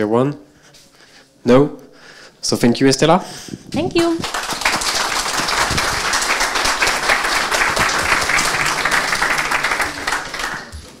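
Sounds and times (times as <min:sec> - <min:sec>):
audience applauding: 0:04.0 - 0:11.0.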